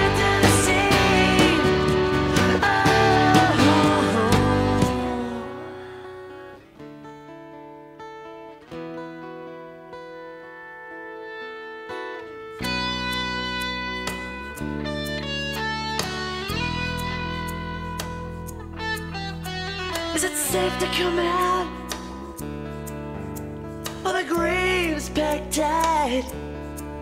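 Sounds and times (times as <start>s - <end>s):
rock band playing: 0.0s - 5.8s, 12.6s - 24.1s
held guitar and keyboard notes: 0.0s - 27.0s.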